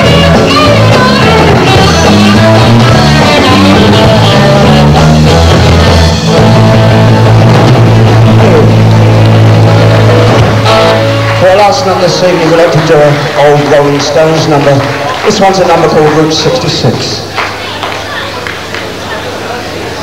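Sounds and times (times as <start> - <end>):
rock and roll band playing: 0.0 - 17.0
man talking: 11.4 - 17.3.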